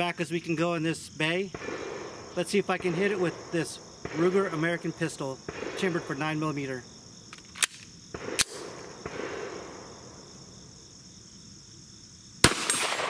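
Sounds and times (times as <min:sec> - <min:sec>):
loud pistol shot: 0:01.5 - 0:04.6, 0:05.5 - 0:06.2, 0:08.1 - 0:10.0, 0:12.4 - 0:13.0
pistol clicks: 0:07.3 - 0:08.8, 0:12.4 - 0:13.0.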